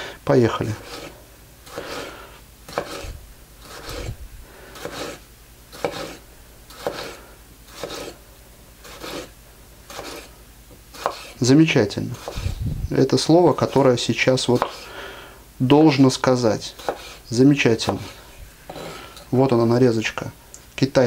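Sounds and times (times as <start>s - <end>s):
knife slicing tomato on board: 0.8s - 1.1s, 2.7s - 4.2s, 4.8s - 8.2s, 8.8s - 9.3s, 9.9s - 11.4s, 12.0s - 12.6s, 14.4s - 14.9s, 16.6s - 19.0s.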